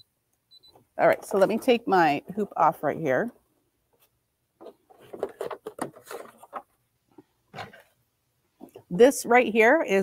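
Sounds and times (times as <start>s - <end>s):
plastic clicks and scrapes: 4.6s - 6.8s.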